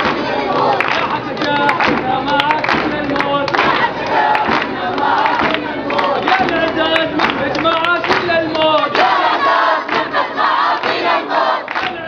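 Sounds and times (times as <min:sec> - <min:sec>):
crowd chanting: 0:00.0 - 0:12.0
rhythmic hand clapping: 0:00.0 - 0:12.0.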